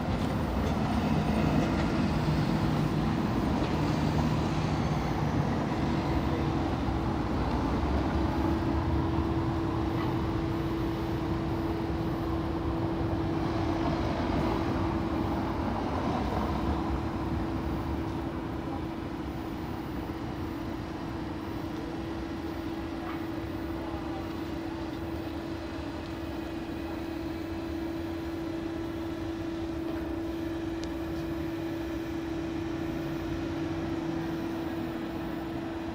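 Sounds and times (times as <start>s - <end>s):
traffic noise: 0.0s - 35.9s.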